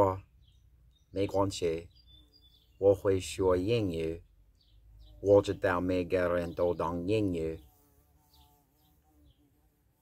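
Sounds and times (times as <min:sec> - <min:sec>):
man's voice: 0:05.2 - 0:07.6.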